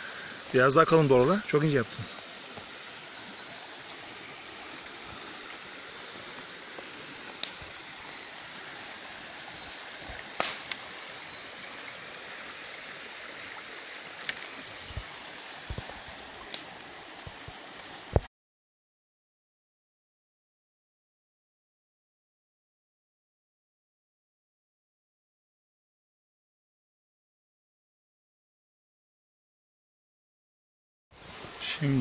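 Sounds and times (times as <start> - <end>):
stream running over stones: 0.0 - 18.3, 31.2 - 32.0.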